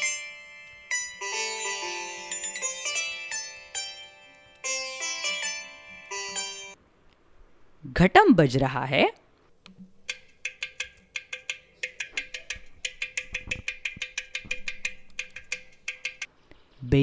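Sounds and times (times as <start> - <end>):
sitar plucked melody: 0.0 - 6.8.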